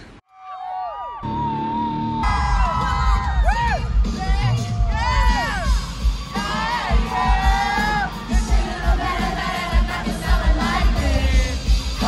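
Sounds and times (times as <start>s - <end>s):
crowd screaming and whooping: 0.3s - 12.0s
live pop-punk band playing: 2.3s - 12.0s.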